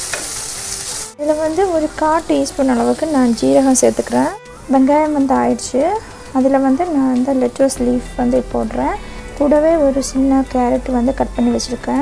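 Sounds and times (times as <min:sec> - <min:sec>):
woman talking: 0:01.2 - 0:12.0.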